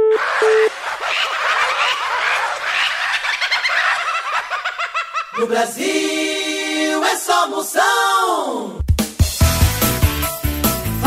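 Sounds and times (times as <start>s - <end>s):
telephone busy tone beeping: 0.0s - 0.7s.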